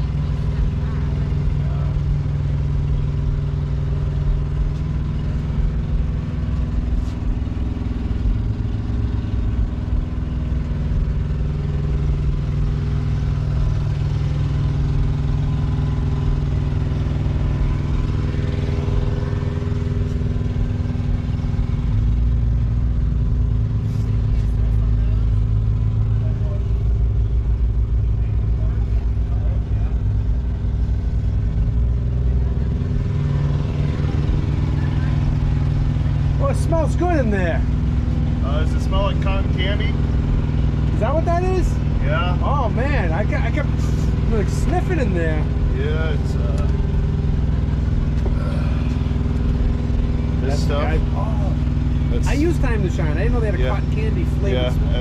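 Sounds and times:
engine idling: 0:00.0 - 0:55.0
background voices: 0:48.2 - 0:49.5.

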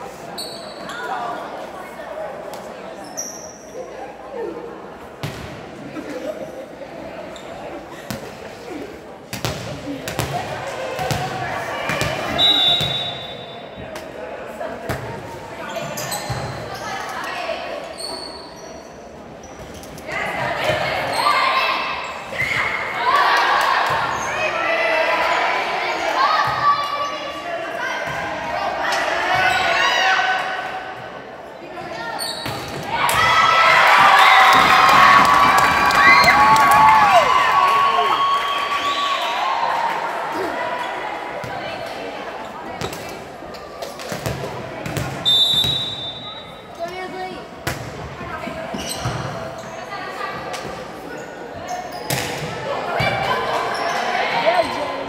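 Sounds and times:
people shouting and cheering: 0:32.8 - 0:42.1.

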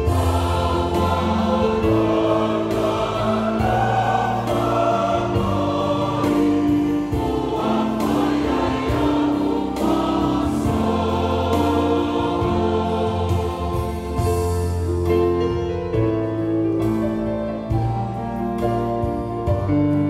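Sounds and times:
congregation singing a hymn: 0:00.0 - 0:14.9.

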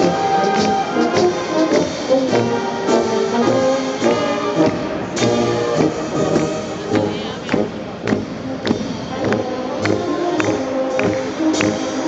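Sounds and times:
brass band playing a march: 0:00.0 - 0:12.0
murmur of voices: 0:00.0 - 0:12.0
percussion strokes: 0:00.0 - 0:12.0.

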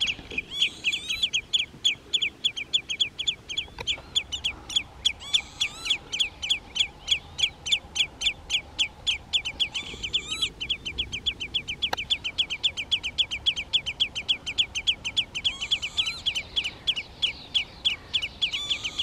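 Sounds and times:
higher bird calls: 0:00.0 - 0:19.0
wader calling sharp notes: 0:00.0 - 0:19.0.

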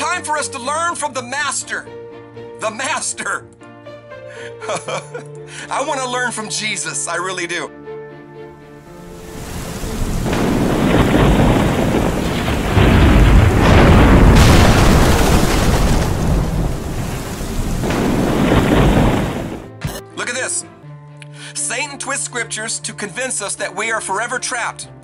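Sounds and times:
steady rain: 0:08.9 - 0:19.7
rolling thunder: 0:09.0 - 0:19.8.

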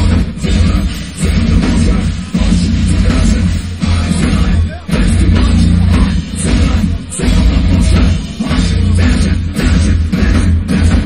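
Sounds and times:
drums and cymbals: 0:00.0 - 0:11.0
heavy metal band playing live: 0:00.0 - 0:11.0.

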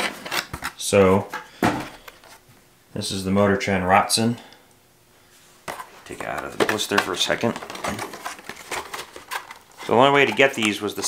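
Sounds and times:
plastic case clicking and crackling: 0:05.7 - 0:11.0.

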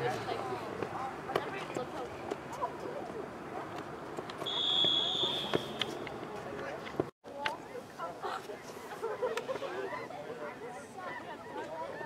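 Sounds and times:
whistle blast: 0:04.4 - 0:06.0.

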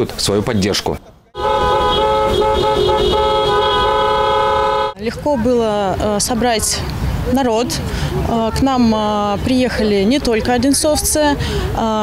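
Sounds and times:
car horns blaring in chord: 0:01.4 - 0:05.0.

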